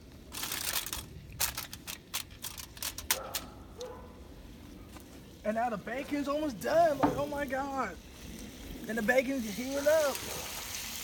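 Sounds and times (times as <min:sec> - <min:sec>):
aluminium foil crinkling: 0:00.0 - 0:03.9.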